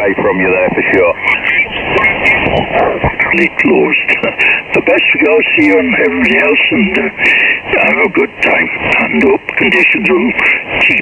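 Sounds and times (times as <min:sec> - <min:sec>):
garbled radio voices: 0:00.0 - 0:11.0
radio band noise: 0:00.0 - 0:11.0.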